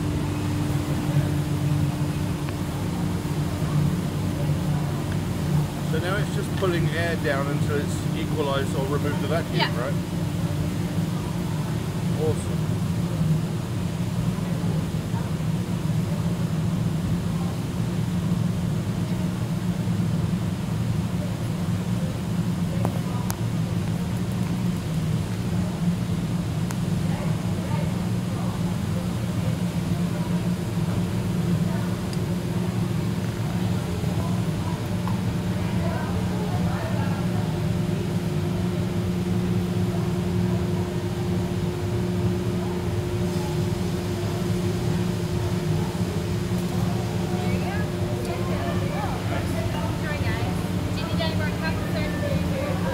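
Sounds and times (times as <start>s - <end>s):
low machine hum: 0.0s - 52.9s.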